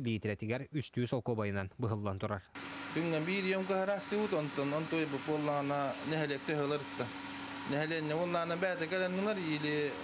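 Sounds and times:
man speaking: 0:00.0 - 0:10.0
mechanical hum: 0:02.5 - 0:10.0.

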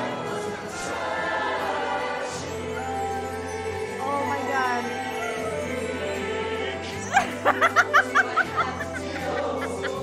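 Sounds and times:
show choir music: 0:00.0 - 0:10.0
woman giggling: 0:07.0 - 0:10.0.

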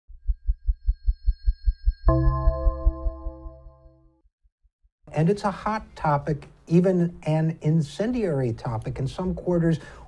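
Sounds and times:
low pulsing beat: 0:00.1 - 0:03.8.

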